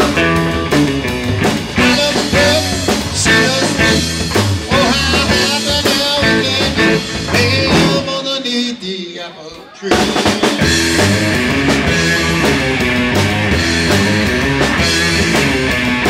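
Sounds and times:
live rock and roll band: 0.0s - 16.0s.

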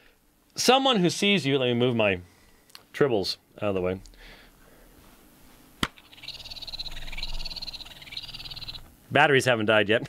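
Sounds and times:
toy trilling warble: 6.0s - 8.9s.

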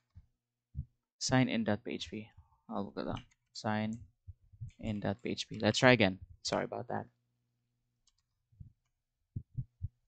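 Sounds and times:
keyboard and mouse clicks: 3.1s - 4.1s, 8.0s - 9.0s.

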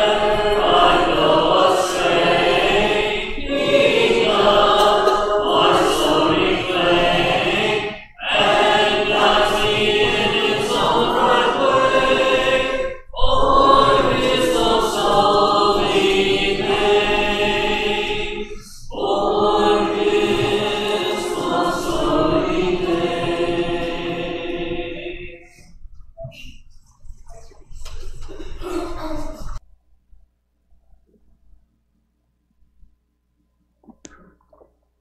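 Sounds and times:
congregation singing a hymn: 0.0s - 25.7s.

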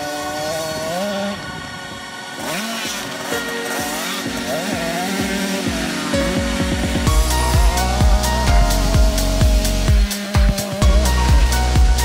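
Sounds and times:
dirt bike engine revving: 0.0s - 12.0s
background music: 2.3s - 12.0s.

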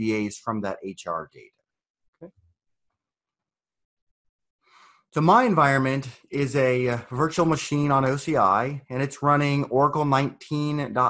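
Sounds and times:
person speaking: 0.0s - 1.5s
faint in-breath: 4.6s - 5.1s.

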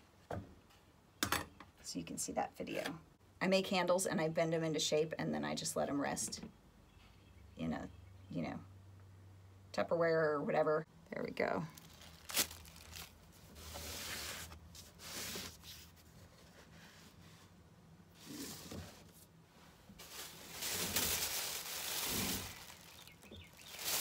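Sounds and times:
plastic bag rustling: 11.8s - 16.0s, 19.9s - 24.0s.

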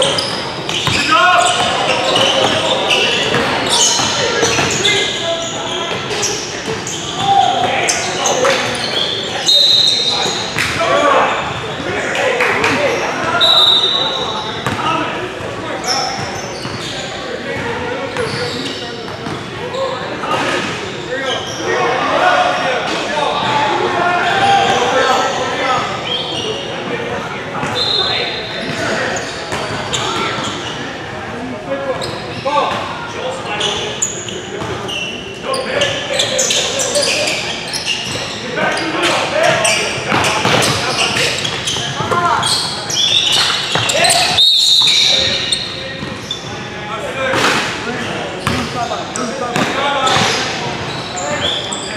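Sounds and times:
sneaker squeaks: 0.0s - 23.6s, 24.2s - 26.9s, 27.5s - 31.1s, 31.9s - 51.9s
players' voices: 0.0s - 51.9s.

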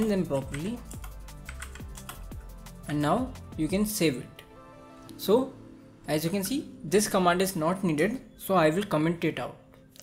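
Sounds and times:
background music: 0.0s - 10.0s
computer keyboard clicking: 0.4s - 2.3s.

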